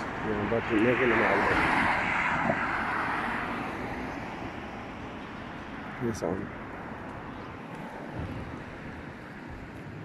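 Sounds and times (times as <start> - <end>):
passing vehicle: 0.0 - 10.0.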